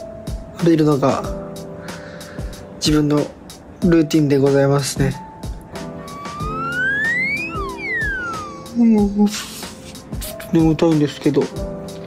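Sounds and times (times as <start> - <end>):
light background music: 0.0 - 12.0
breathy exhale: 1.8 - 2.6
comic slide whistle: 6.0 - 9.0.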